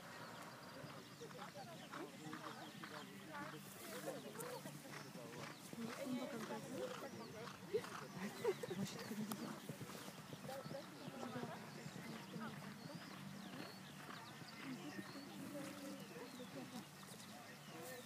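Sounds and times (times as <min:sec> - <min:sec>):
crowd chatter outdoors: 0:00.0 - 0:18.0.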